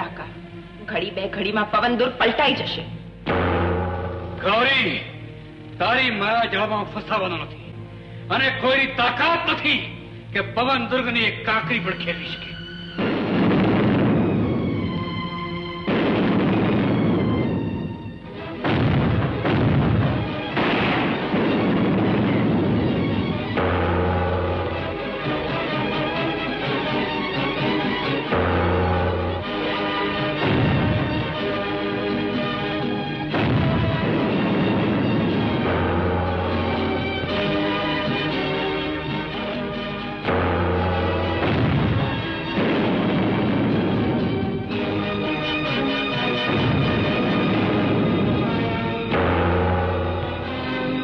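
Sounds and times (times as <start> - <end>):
film music: 0.0 - 51.0
cannon blasts: 3.2 - 5.1, 13.0 - 27.0, 28.0 - 38.5, 40.2 - 51.0.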